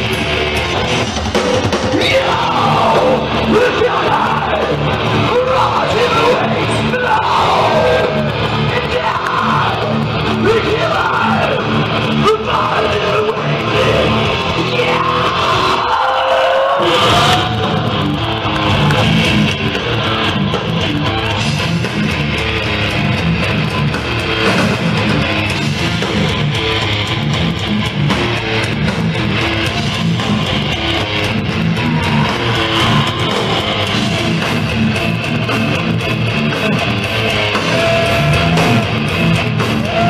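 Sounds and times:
bass: 0.0s - 40.0s
distorted electric guitar riffs: 0.0s - 40.0s
drums: 0.0s - 40.0s.

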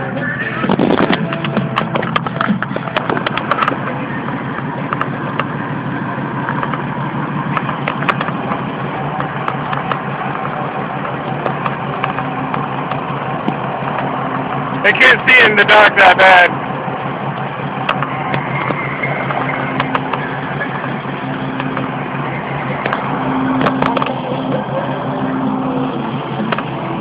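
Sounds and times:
car road and engine noise: 0.0s - 27.0s
sharp clicks: 9.2s - 14.1s.

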